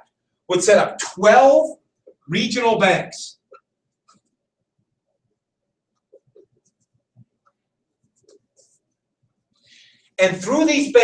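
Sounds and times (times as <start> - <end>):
marker writing on whiteboard: 3.3 - 9.7.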